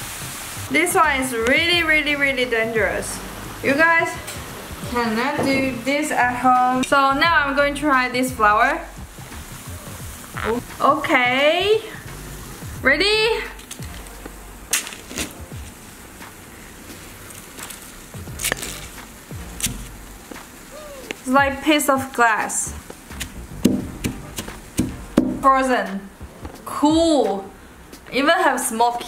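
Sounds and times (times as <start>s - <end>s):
dry ice liquid fizzing: 8.6s - 23.2s
frozen petals crunching: 13.5s - 15.9s, 16.6s - 21.3s.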